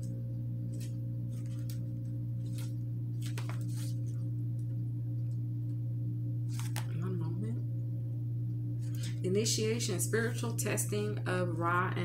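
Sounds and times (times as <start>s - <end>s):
low hum with higher tones: 0.0s - 12.0s.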